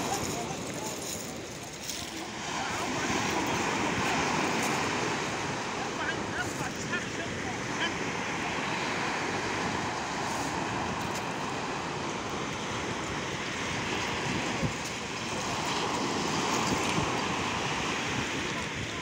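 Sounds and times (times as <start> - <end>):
sea surf breaking on beach: 0.0 - 19.0.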